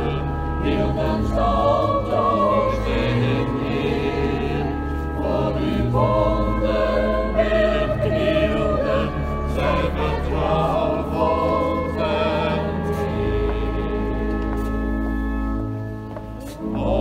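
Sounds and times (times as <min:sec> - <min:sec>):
choir singing sustained notes: 0:00.0 - 0:15.8, 0:16.5 - 0:17.0.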